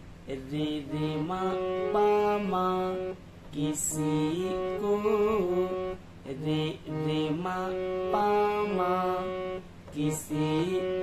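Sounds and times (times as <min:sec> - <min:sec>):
person singing: 0:00.3 - 0:11.0
harmonium melody: 0:00.5 - 0:11.0.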